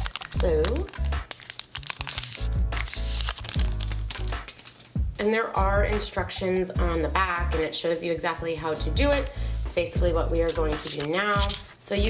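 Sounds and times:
cellophane crinkling: 0.0s - 5.0s, 10.4s - 11.9s
background music with bass: 1.9s - 7.7s, 8.4s - 11.6s.

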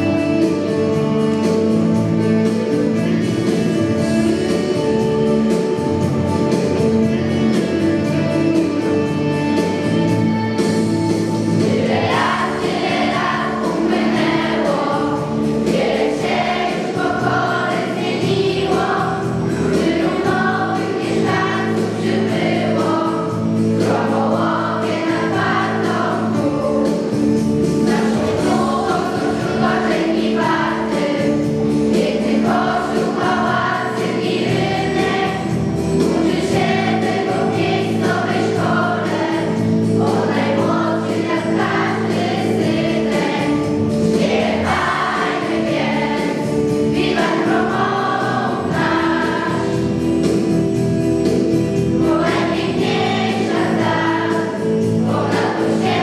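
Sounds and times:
children's choir singing: 0.0s - 56.0s
instrumental accompaniment: 0.0s - 56.0s.

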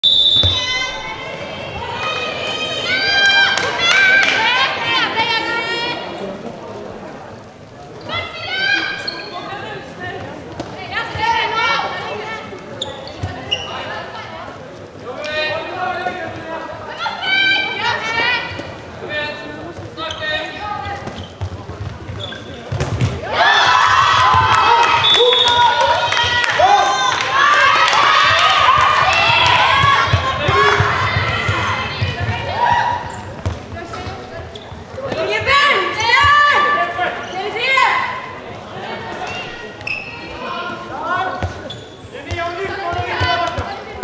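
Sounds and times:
ball bouncing on hall floor: 21.0s - 23.3s, 28.3s - 35.4s
many voices shouting: 23.2s - 33.1s.

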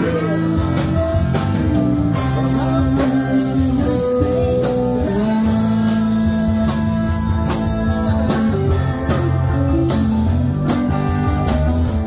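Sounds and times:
drum kit beat: 0.0s - 12.0s
electric guitar: 0.0s - 12.0s
keyboard: 0.0s - 12.0s.

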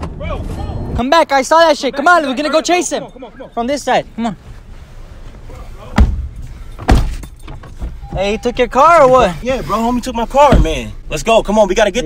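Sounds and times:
heavy thumps: 5.9s - 8.4s, 10.3s - 11.0s.

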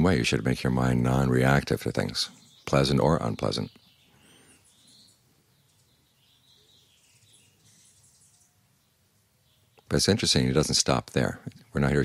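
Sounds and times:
faint bird chirps: 0.0s - 12.0s.

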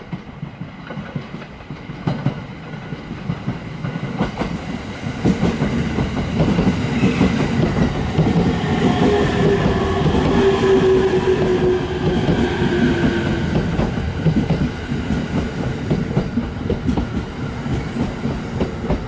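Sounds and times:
train wheels clicking over rail joints: 0.0s - 19.0s
train whine falling in pitch: 6.5s - 14.6s.

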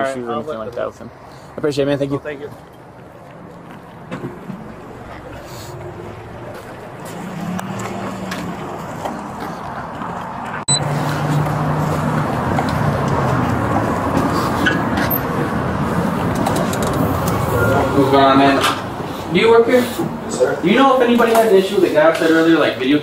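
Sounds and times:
traffic noise with low hum: 0.0s - 23.0s.

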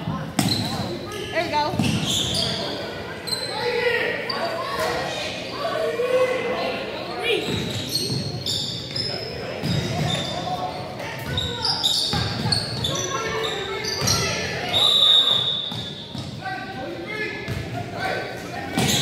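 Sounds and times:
spectators' voices: 0.0s - 19.0s.

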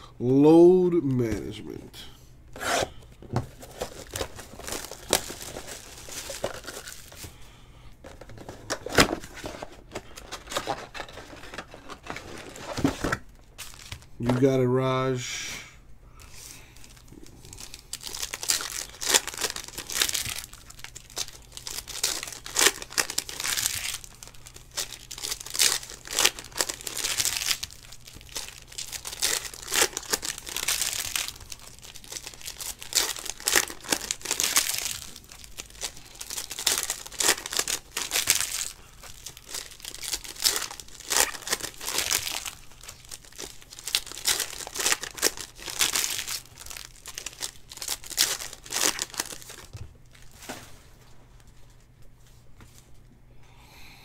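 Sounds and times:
foil wrappers tearing and crinkling: 3.5s - 7.4s, 8.0s - 14.4s, 16.8s - 50.8s.

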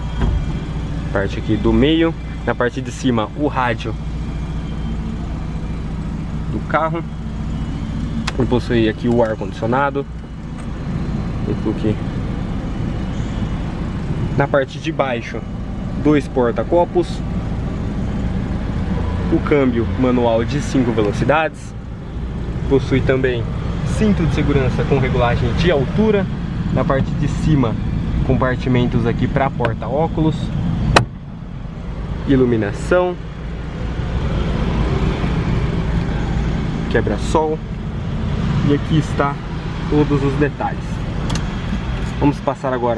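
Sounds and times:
car engine idling: 0.0s - 42.9s.

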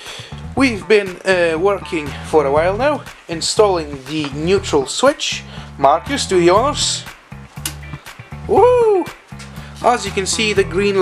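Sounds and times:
background music with bass beat: 0.0s - 11.0s.

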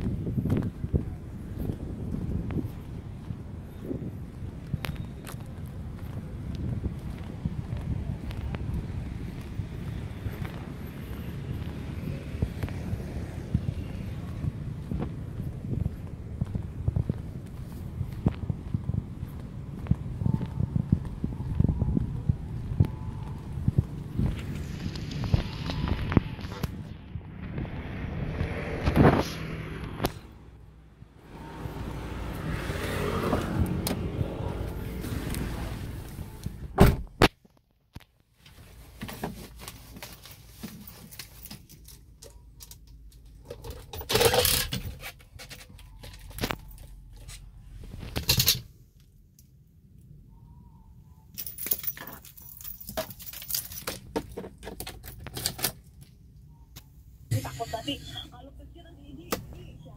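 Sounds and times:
wind buffeting microphone: 0.0s - 37.2s
sharp clicks and rattles: 41.1s - 47.4s.

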